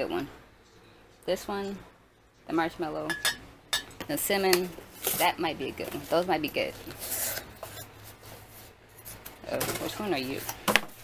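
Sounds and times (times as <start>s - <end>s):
cardboard scraping against cardboard: 5.0s - 9.9s.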